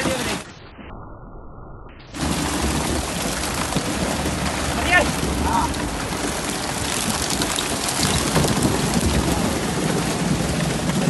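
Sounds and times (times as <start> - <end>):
low rumble: 0.0 - 11.0
water splashing and spattering: 2.1 - 11.0.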